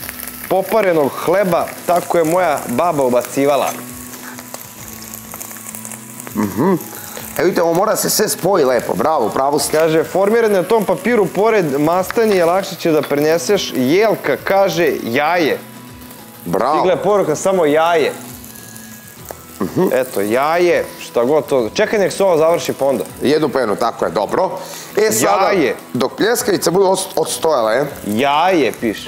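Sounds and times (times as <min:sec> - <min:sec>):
meat sizzling in hot oil: 0:00.0 - 0:29.0.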